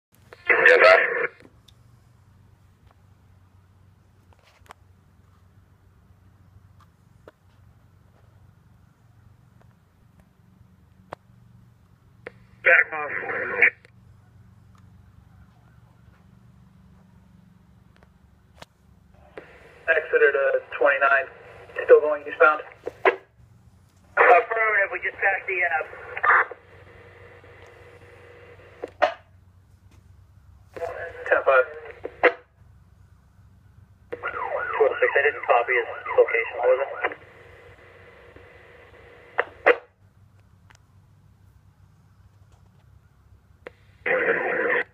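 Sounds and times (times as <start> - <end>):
faint low hum: 0.2 - 44.9
tinny radio voice: 0.3 - 1.4, 12.6 - 13.8, 19.3 - 23.2, 24.2 - 28.8, 30.8 - 32.4, 34.2 - 37.5, 44.1 - 44.9.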